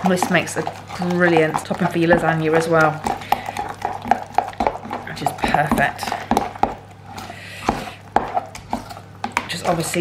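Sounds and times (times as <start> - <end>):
metal spoon scraping plastic jug: 0.0 - 6.3.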